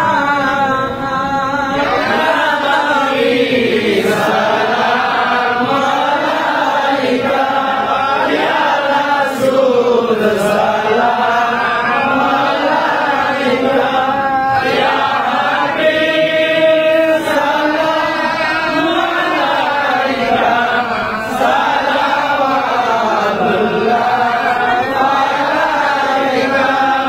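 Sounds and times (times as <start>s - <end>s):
men chanting in unison: 0.0s - 27.0s.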